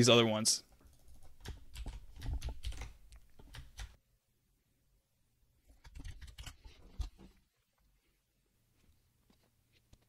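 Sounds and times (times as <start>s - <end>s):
computer keyboard typing: 0.8s - 4.0s, 5.8s - 6.6s.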